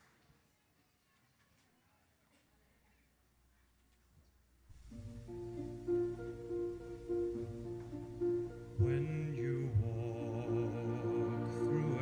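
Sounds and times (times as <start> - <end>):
instrumental accompaniment: 4.8 - 12.0
man singing into a microphone: 8.8 - 12.0.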